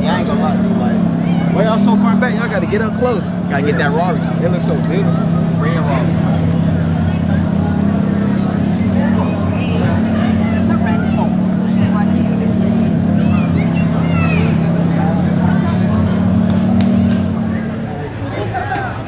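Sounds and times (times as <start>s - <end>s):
faint people talking: 0.0s - 19.0s
low engine-like drone: 0.0s - 19.0s.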